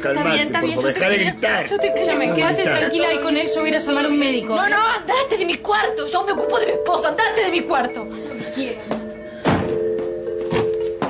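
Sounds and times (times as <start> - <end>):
background music chords: 0.4 - 11.0
door slamming with heavy thud: 9.4 - 9.8.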